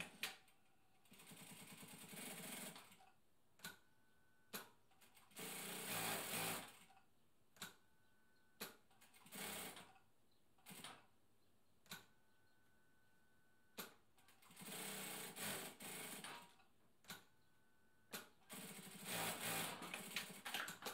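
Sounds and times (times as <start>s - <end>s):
sewing machine stitching: 0.0s - 3.1s, 4.6s - 7.0s, 8.6s - 10.0s, 13.8s - 17.2s, 18.2s - 20.9s
sewing machine clicks: 18.1s - 20.9s.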